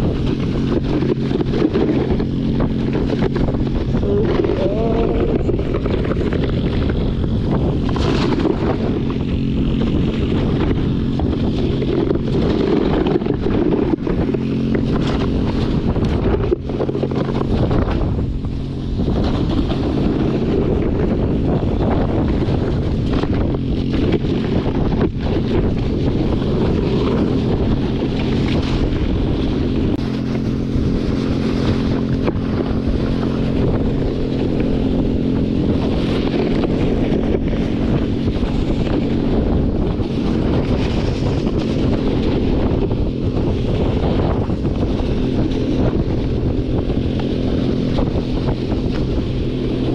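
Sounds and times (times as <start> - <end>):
go-kart engine running: 0.0 - 49.9
wind rushing on microphone: 0.0 - 49.9.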